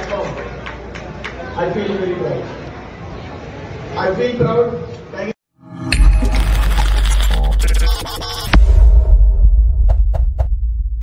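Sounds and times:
deep bass boom: 8.5 - 11.0.

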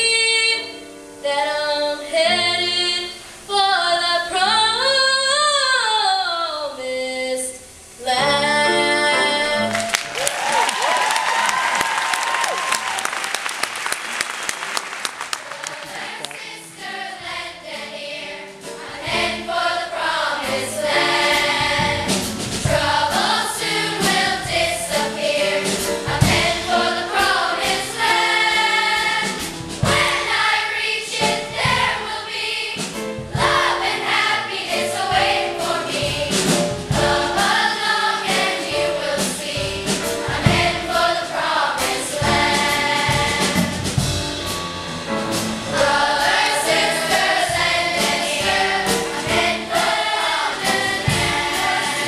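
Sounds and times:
audience applauding: 9.6 - 16.6
children's choir singing: 15.2 - 44.1, 45.6 - 52.0.

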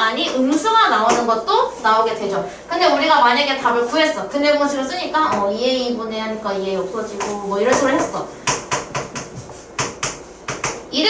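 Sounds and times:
marker writing on a board: 7.2 - 10.8.

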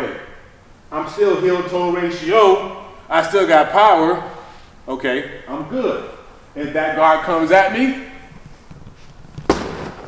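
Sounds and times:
hands slapping padded dummy: 9.4 - 10.0.

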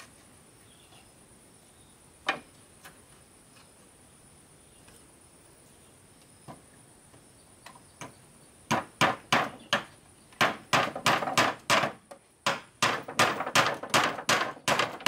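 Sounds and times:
hammer striking wooden boards: 8.7 - 15.0.

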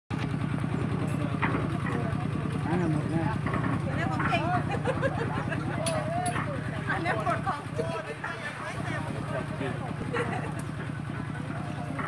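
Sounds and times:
concrete mixer engine running: 0.1 - 12.0
people's voices: 0.8 - 12.0.

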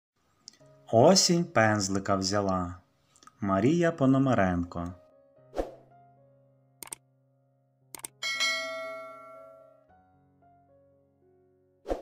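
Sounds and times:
soft background music: 0.2 - 12.0
bright bell chime: 8.2 - 9.9.

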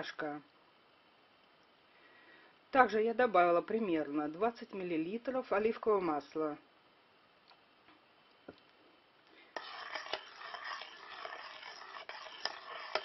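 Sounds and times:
spoon scraping in metal pot: 9.5 - 13.0.

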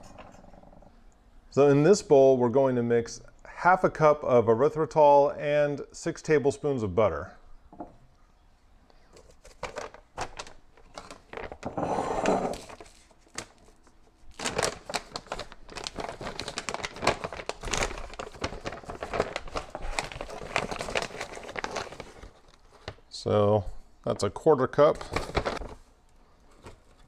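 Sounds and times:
plastic pouch crinkling: 9.1 - 11.7, 12.5 - 23.0, 25.0 - 27.0.

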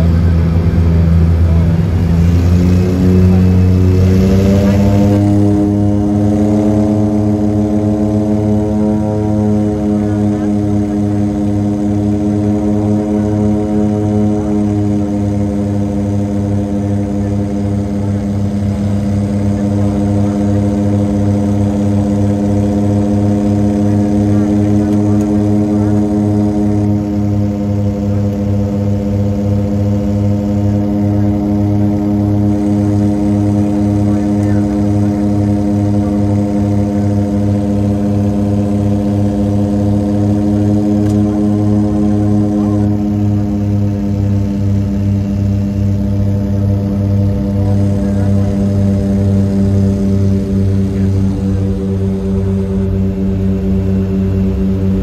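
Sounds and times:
turboprop cabin drone: 0.0 - 55.0.

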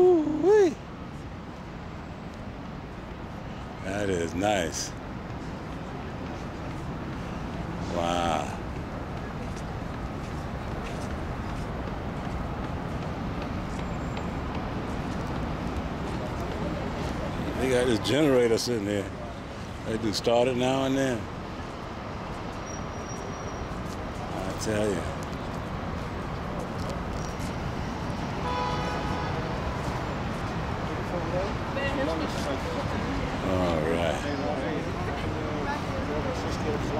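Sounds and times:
city traffic rumble: 0.0 - 36.9
horn sounding: 28.4 - 29.8.

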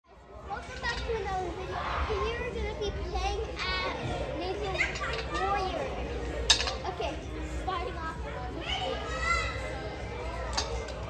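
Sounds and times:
children shouting and chattering: 0.1 - 11.0.

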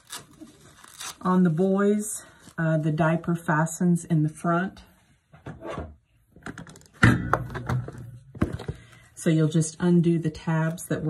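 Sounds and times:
diaper rustling and crinkling: 0.0 - 1.6.

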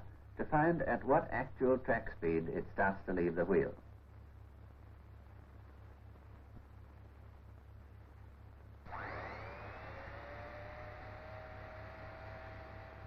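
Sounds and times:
spinning wheel whine: 8.7 - 13.0.

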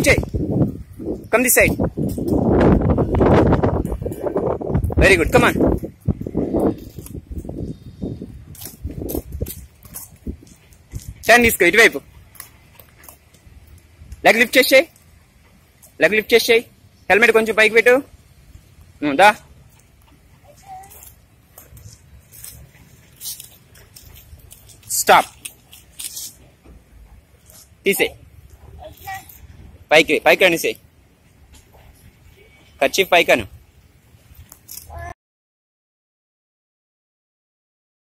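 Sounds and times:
skate scuffs and clicks: 19.8 - 26.7.

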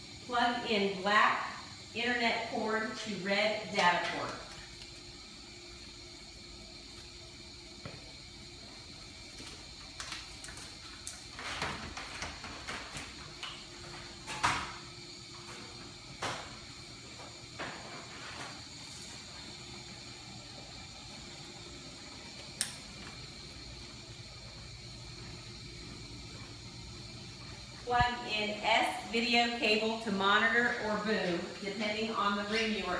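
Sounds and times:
equipment hum and whine: 0.0 - 32.9.

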